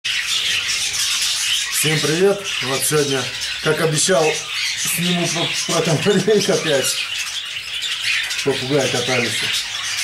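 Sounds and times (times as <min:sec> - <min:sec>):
canaries and parrots chirping: 0:00.0 - 0:10.0.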